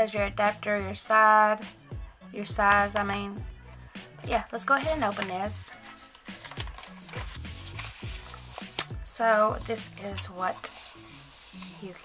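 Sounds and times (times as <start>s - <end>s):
background music with steady beat: 0.0s - 12.0s
cardboard box and paper rustling: 4.9s - 8.8s, 9.6s - 12.0s.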